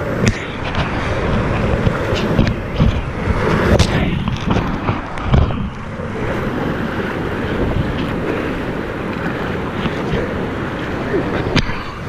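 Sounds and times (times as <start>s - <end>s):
rushing whitewater roar: 0.0s - 12.0s
wind buffeting microphone: 0.0s - 12.0s.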